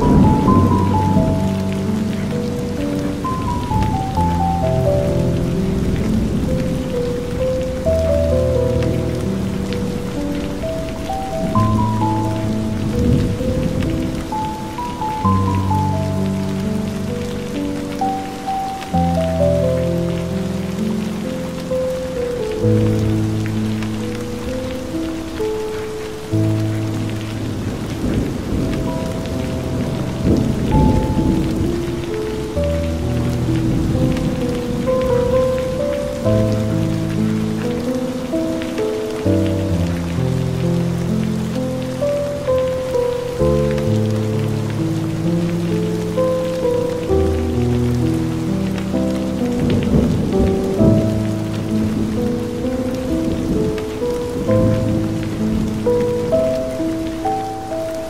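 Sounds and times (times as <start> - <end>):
thunder rolling: 0.0 - 20.6, 26.2 - 40.6, 44.6 - 57.5
soft music of long notes: 0.0 - 58.0
steady rain: 0.0 - 58.0.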